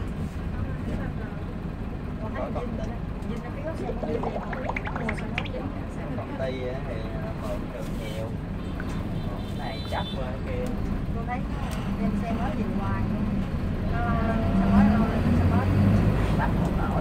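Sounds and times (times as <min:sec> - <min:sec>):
people talking: 0:03.5 - 0:05.9.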